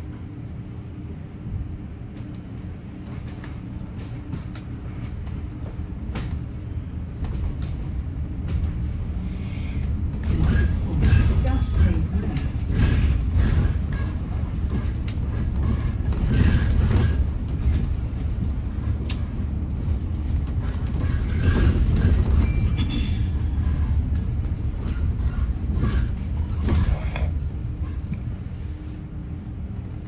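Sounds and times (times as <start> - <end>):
bus road rumble: 0.0 - 30.0.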